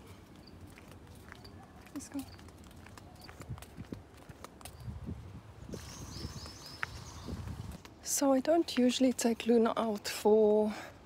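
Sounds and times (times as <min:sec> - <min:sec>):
footsteps on paving: 0:00.0 - 0:08.0.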